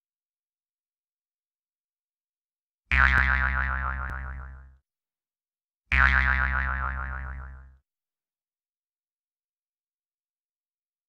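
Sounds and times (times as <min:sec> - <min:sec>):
warbling boing sound effect: 0:02.9 - 0:04.6, 0:06.0 - 0:07.6.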